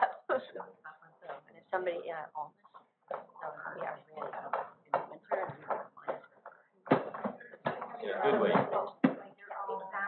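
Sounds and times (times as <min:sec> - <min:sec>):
indistinct conversational speech: 0:00.0 - 0:10.0.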